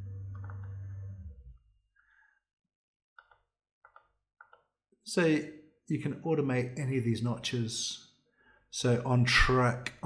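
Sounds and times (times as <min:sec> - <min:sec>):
low hum: 0:00.0 - 0:01.6
computer mouse clicks: 0:03.2 - 0:04.7.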